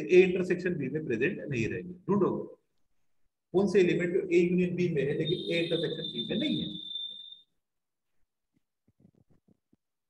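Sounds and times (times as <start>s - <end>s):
thin steady high tone: 5.0s - 7.5s.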